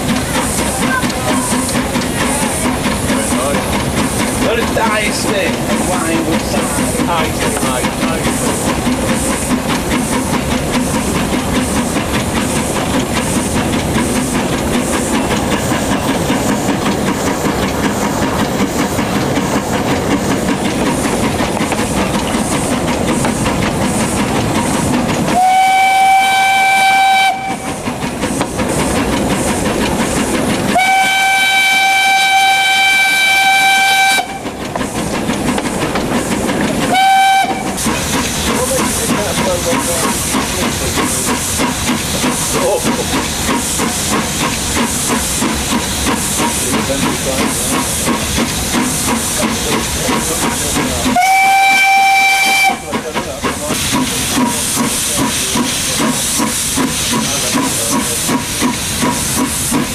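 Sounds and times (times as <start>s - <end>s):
steam locomotive running: 0.0s - 59.9s
steam whistle blowing: 25.3s - 27.8s, 30.7s - 34.5s, 36.9s - 37.8s, 51.2s - 52.9s.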